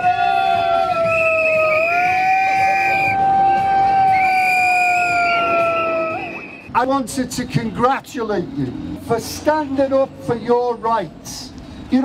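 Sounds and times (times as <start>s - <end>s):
shrill whistle: 1.0s - 3.3s, 4.1s - 6.7s.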